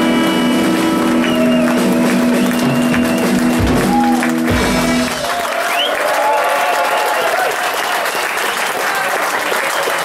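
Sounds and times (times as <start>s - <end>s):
live rock band sustained chord: 0.0s - 5.3s
audience applause: 0.0s - 10.0s.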